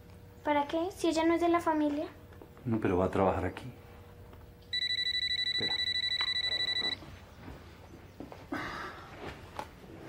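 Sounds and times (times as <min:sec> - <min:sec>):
telephone ringing: 0:04.7 - 0:07.1.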